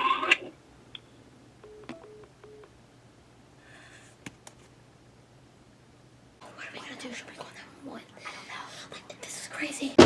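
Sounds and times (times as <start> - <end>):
person whispering: 6.4 - 9.8.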